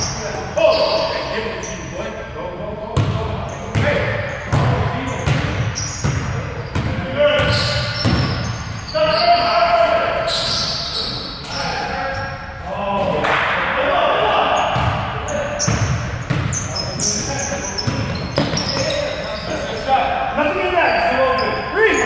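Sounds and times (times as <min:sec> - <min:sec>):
players calling out: 0:00.0 - 0:22.0.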